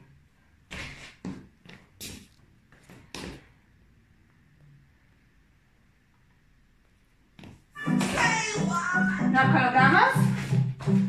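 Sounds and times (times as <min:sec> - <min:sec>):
scuffing and knocking noises: 0:00.7 - 0:03.6, 0:10.2 - 0:11.0.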